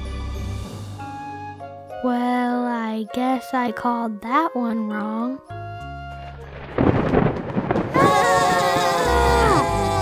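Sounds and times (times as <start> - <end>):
loud rumbling crash: 6.4 - 9.6
characters screaming together: 7.9 - 10.0.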